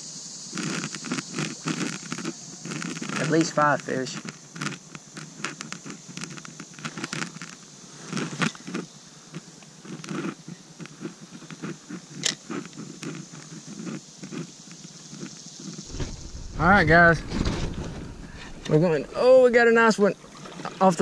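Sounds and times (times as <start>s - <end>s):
steady high-pitched hiss: 0.0s - 21.0s.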